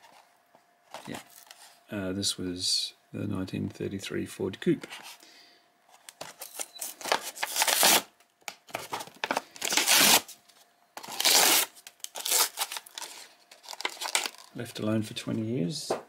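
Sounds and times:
blister pack ripping and crackling: 0:06.5 - 0:10.3, 0:11.0 - 0:14.6.

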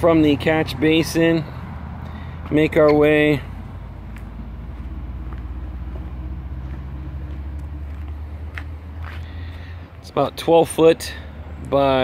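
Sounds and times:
low motor hum: 0:01.5 - 0:10.0.

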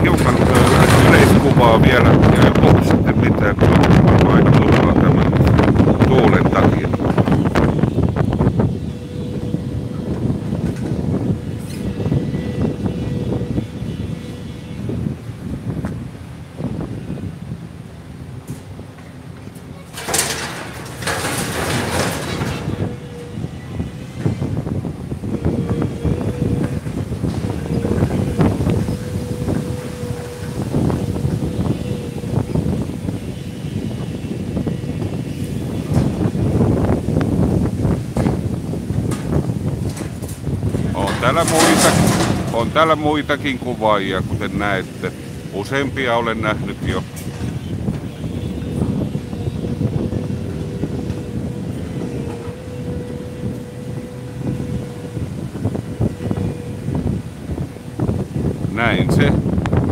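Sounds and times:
city street noise: 0:00.0 - 0:59.9
wind buffeting microphone: 0:00.0 - 0:59.9.

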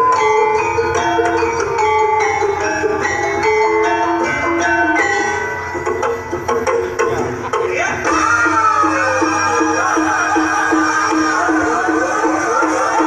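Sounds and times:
gamelan metallophones playing: 0:00.0 - 0:13.0.

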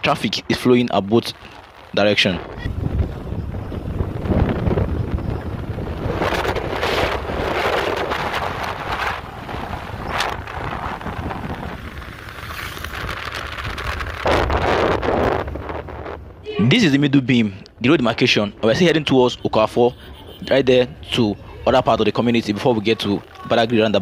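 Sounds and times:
vehicle rumble on road: 0:00.0 - 0:16.5
wind buffeting microphone: 0:00.0 - 0:19.5.

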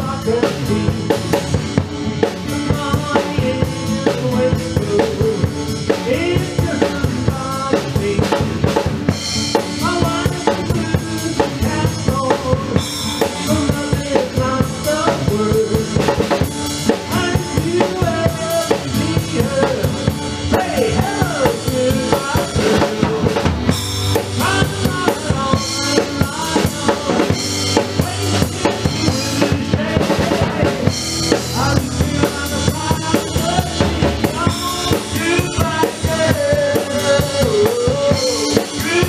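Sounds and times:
drum kit beat: 0:00.0 - 0:39.0.

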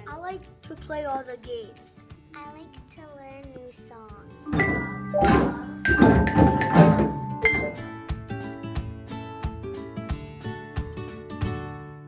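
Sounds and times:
xylophones and hand drums playing: 0:04.5 - 0:07.9.

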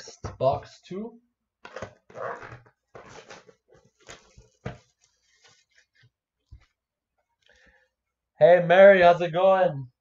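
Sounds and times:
plastic shrink wrap crinkling: 0:03.0 - 0:06.0.

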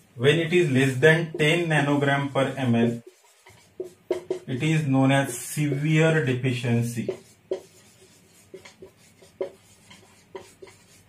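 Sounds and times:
marker squeaking on whiteboard: 0:00.8 - 0:05.8, 0:07.0 - 0:11.0.

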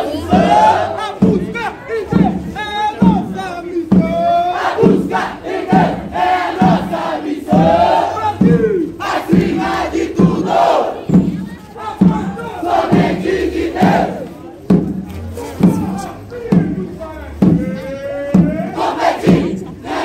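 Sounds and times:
bass drums beating: 0:00.0 - 0:20.0
crowd shouting and chanting: 0:00.0 - 0:20.0.

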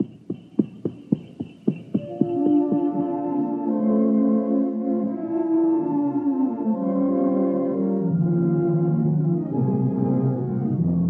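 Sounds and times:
horse hooves trotting: 0:00.0 - 0:03.0.

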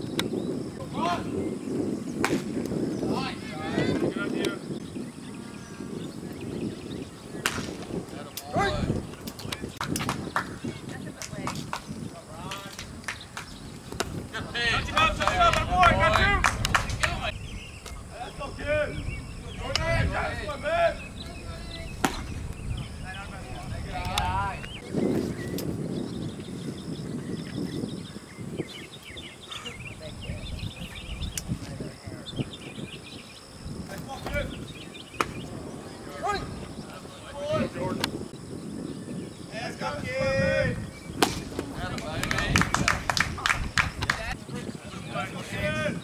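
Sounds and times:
small birds chirping: 0:00.0 - 0:46.0
people calling out: 0:08.4 - 0:09.0, 0:14.3 - 0:17.4, 0:18.1 - 0:21.9, 0:36.0 - 0:38.0
loud shout: 0:14.4 - 0:17.3.

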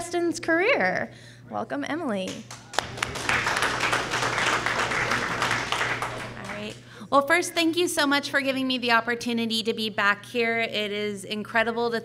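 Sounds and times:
audience applauding: 0:02.4 - 0:06.8.

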